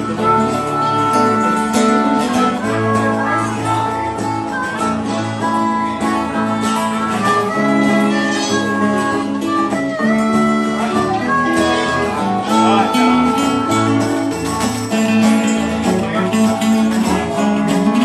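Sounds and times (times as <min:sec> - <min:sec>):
bass: 0:00.0 - 0:18.0
harmonica solo: 0:00.0 - 0:18.0
strummed acoustic guitars: 0:00.0 - 0:18.0.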